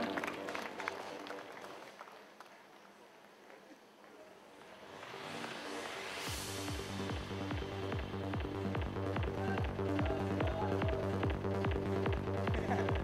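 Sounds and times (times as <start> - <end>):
music: 0.0 - 3.0, 4.3 - 13.0
audience applause: 0.0 - 5.7.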